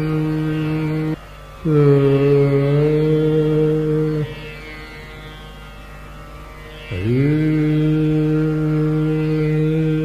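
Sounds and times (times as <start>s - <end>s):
man singing long notes: 0.0s - 4.7s, 6.9s - 10.0s
tanpura drone: 0.0s - 10.0s.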